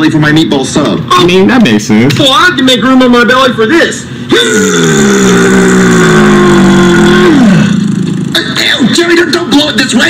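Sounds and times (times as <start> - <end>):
long loud burp: 4.3 - 8.4.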